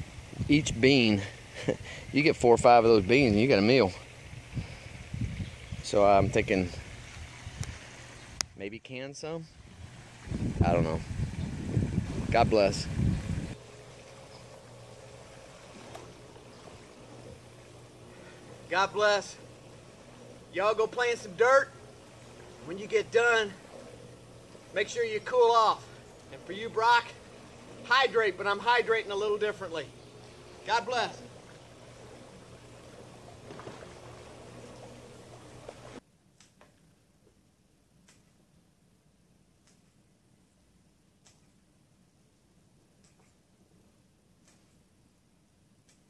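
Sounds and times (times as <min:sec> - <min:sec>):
wind buffeting microphone: 0:00.0 - 0:03.3, 0:04.2 - 0:07.8, 0:09.6 - 0:13.6
faint water movement in pool: 0:00.0 - 0:46.0
low steady hum: 0:00.0 - 0:46.0.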